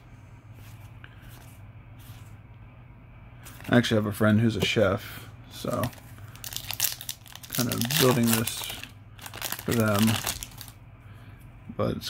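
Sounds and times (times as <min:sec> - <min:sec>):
foil wrapper crinkling and tearing: 0:05.7 - 0:10.8.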